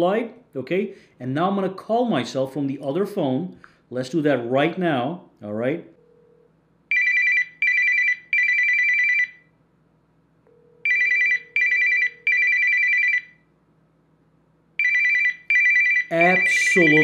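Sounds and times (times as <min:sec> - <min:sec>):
phone ringtone beeping: 0:06.0 - 0:09.4, 0:10.5 - 0:13.4, 0:14.8 - 0:17.0.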